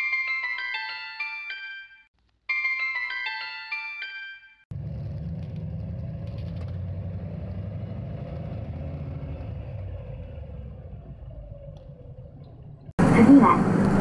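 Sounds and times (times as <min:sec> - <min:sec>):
bus engine and road rumble: 0:04.7 - 0:14.0.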